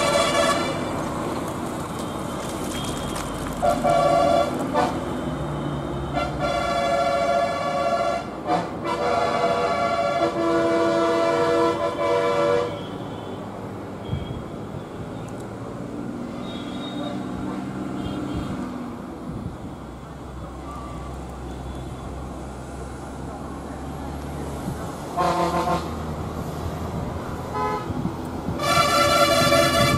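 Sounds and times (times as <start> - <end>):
vehicle horn: 0.0 - 1.0, 2.8 - 5.2, 6.1 - 13.4, 16.4 - 17.2, 25.2 - 26.0, 27.5 - 28.0, 28.6 - 29.9.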